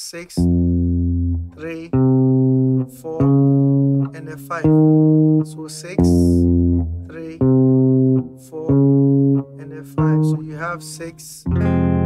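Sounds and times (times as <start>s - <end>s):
electric guitar chords: 0.4s - 12.0s.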